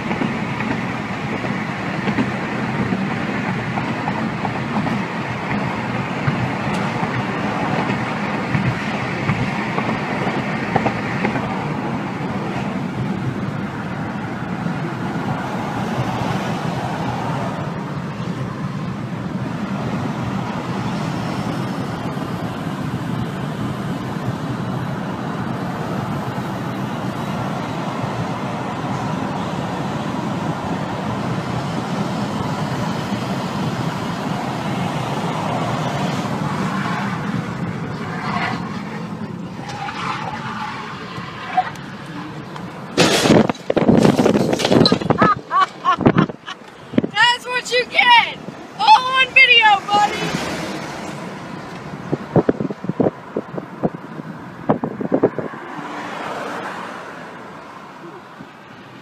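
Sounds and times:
tyres on road: 0.0 - 59.0.

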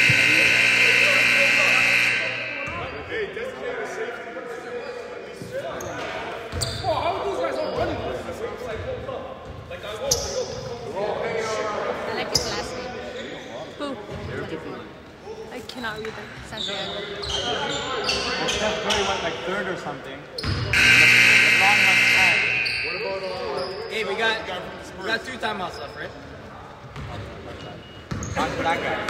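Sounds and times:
loud scoreboard buzzer: 0.0 - 3.0, 20.7 - 23.2
echoing players' voices: 0.0 - 3.7, 20.6 - 23.4.

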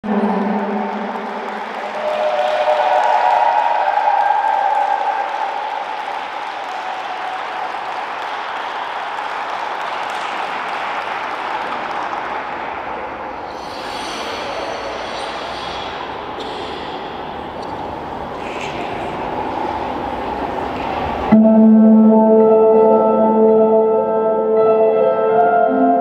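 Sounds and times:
audience applause: 0.0 - 21.3.

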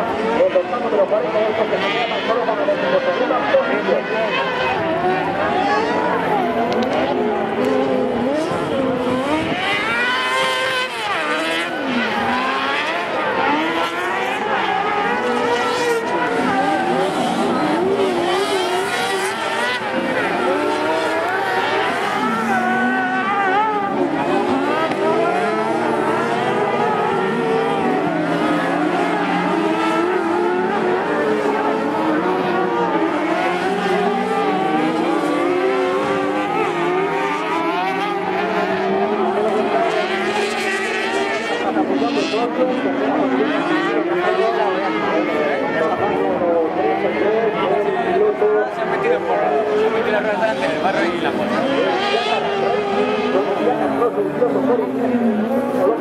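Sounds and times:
high-revving buggy engines: 0.0 - 56.0.

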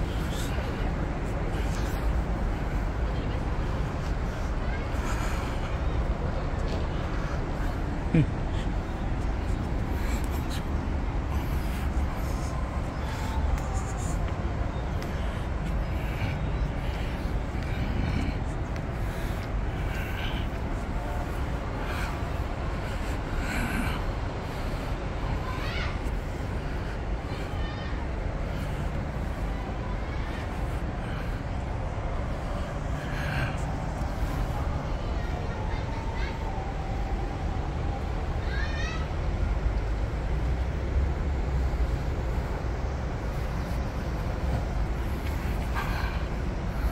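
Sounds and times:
urban background rumble: 0.0 - 46.9.

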